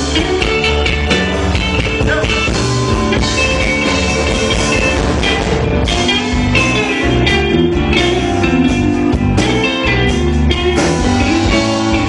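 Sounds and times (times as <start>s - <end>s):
drum beat: 0.0s - 12.0s
guitar: 0.0s - 12.0s
rock band playing: 0.0s - 12.0s.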